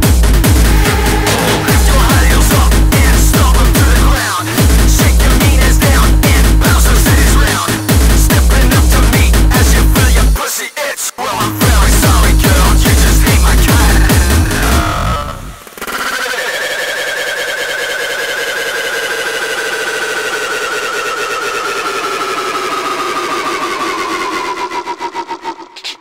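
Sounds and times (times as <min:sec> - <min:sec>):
pulsing synth lead: 0:00.0 - 0:10.0, 0:11.7 - 0:25.8
pounding kick drum: 0:00.0 - 0:10.4, 0:11.5 - 0:14.9.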